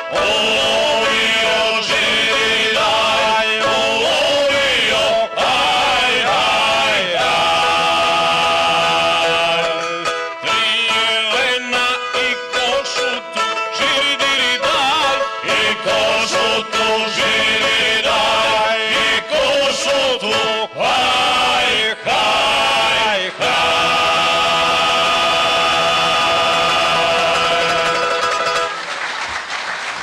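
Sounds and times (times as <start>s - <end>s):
male group singing folk song: 0.0s - 28.7s.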